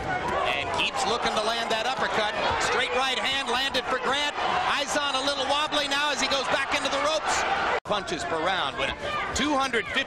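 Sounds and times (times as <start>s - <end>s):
man talking: 0.5s - 10.0s.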